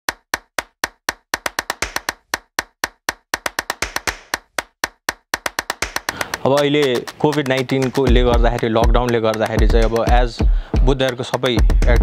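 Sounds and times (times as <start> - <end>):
quick clicks: 0.1 - 10.2
sharp dry clicks on a pulse: 0.1 - 11.6.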